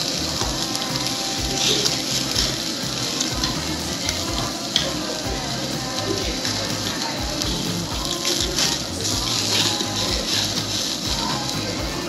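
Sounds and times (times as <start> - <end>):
beef sizzling on a grill: 0.0 - 12.0
music with bass beat: 0.0 - 12.0.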